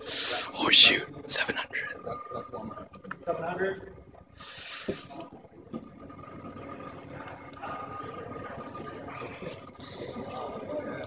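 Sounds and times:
faint voices: 0.0s - 11.0s
lab machinery humming: 0.0s - 11.0s
thin high whine: 0.0s - 11.0s
short sharp hiss: 4.4s - 5.2s.

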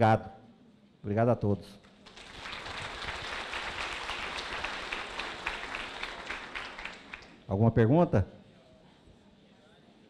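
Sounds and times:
audience applauding: 2.0s - 7.4s.

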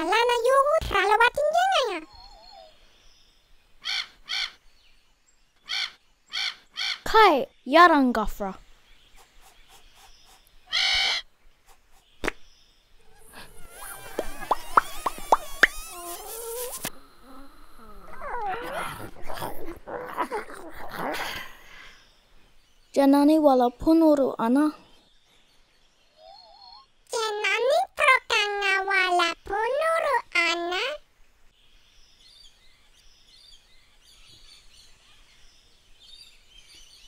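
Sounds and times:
warbling bird call: 9.2s - 11.3s, 13.0s - 21.8s
seagull squawking: 10.7s - 11.2s.

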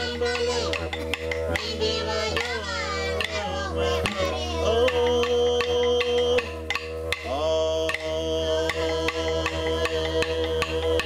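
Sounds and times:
low drone: 0.0s - 11.0s
percussion strikes: 0.0s - 11.0s
person chant-like singing: 1.5s - 6.6s, 7.3s - 11.0s.

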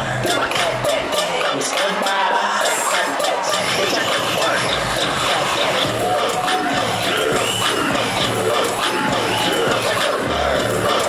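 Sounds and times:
audience cheering and shouting: 0.0s - 11.0s
loud dance music over speakers: 0.0s - 11.0s.

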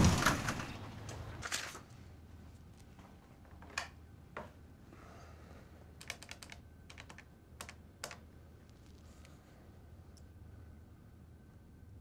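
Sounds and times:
telephone keypad buttons clicking: 6.0s - 8.2s.

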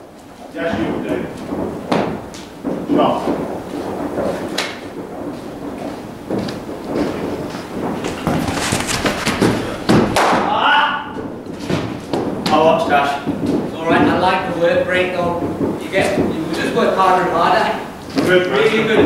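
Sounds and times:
men's voices: 0.5s - 1.4s, 8.5s - 19.0s
sharp thud: 6.3s - 12.6s
cricket bat hitting ball: 8.0s - 10.5s.

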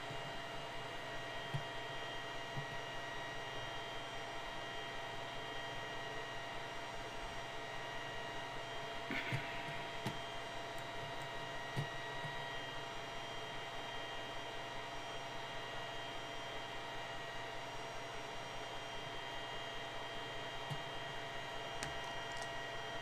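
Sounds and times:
electrical hum and hiss: 7.2s - 14.4s.

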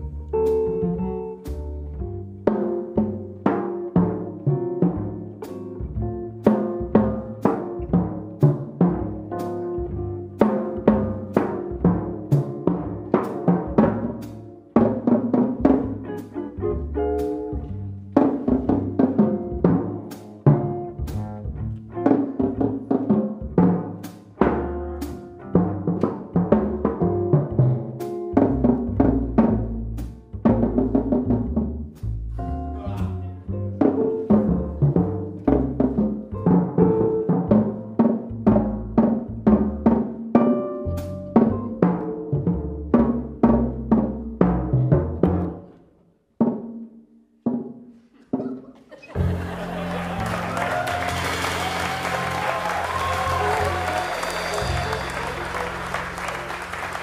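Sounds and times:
drum kit played with soft mallets: 0.0s - 45.8s, 46.4s - 57.0s.

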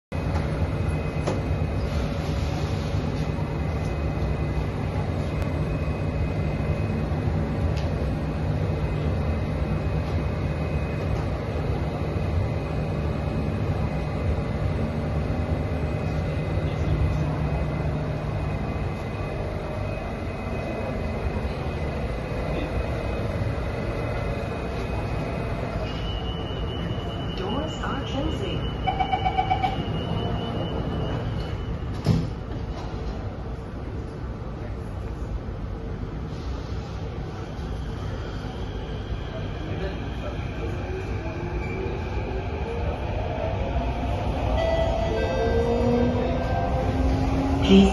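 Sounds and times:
metro train car hum: 0.1s - 47.9s
door-closing beeps: 0.9s - 1.6s, 25.9s - 32.4s.

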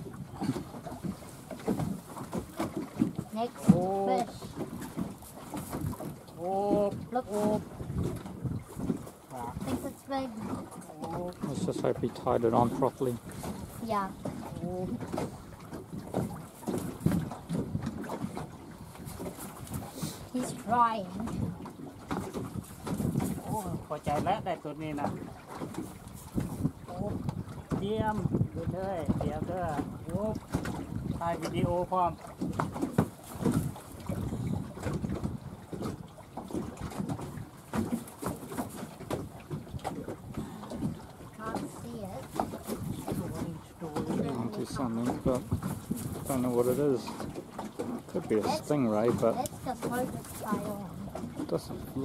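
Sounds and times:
choppy water around boat: 0.0s - 52.0s
wind buffeting microphone: 0.0s - 52.0s.

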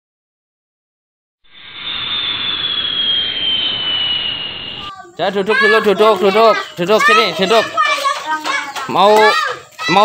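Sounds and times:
whoosh with falling whistle: 1.4s - 4.9s.

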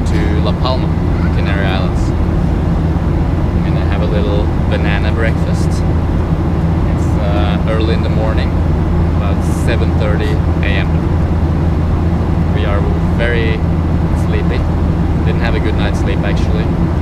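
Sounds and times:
voices talking: 0.0s - 11.2s, 12.4s - 16.9s
airliner engine drone: 0.0s - 17.0s.

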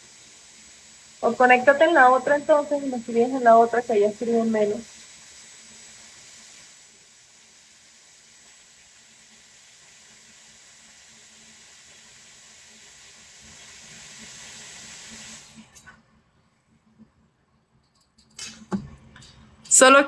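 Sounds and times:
hot-air styler fan hissing: 0.0s - 15.9s.

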